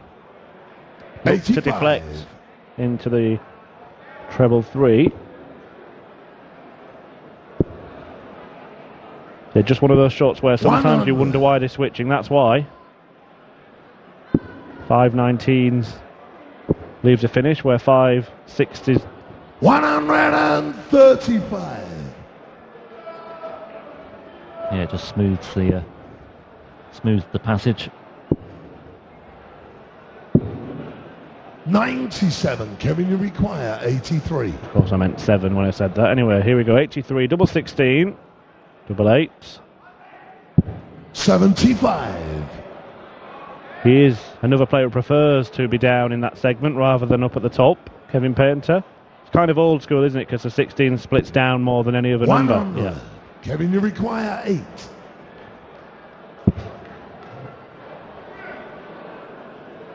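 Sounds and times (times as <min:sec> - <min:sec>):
low background murmur: 0:00.0 - 0:59.9
hall ambience: 0:10.6 - 0:11.6, 0:18.8 - 0:22.3, 0:52.2 - 0:55.2.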